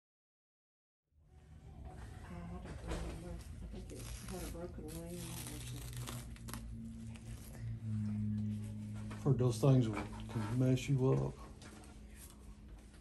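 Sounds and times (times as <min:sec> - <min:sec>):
plastic dressing being peeled: 0:03.8 - 0:06.8.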